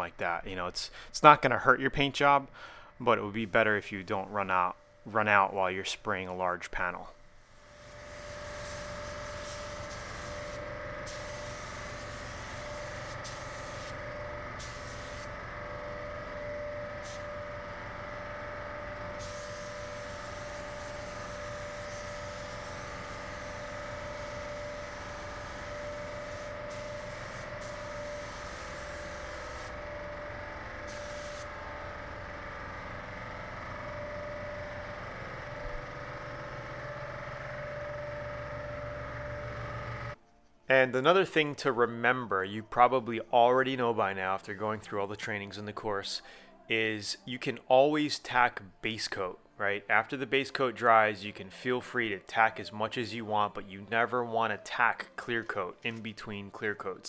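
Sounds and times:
paint spray gun hissing: 0:07.3 - 0:40.0.

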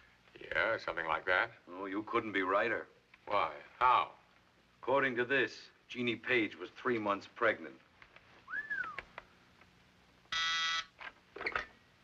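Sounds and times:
rising and falling whistle: 0:08.5 - 0:09.0
desk telephone buzzing ring: 0:10.3 - 0:10.9.

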